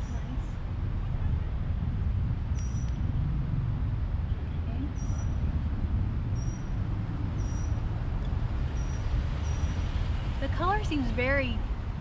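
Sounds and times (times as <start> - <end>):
low rumble of street noise: 0.0 - 12.0.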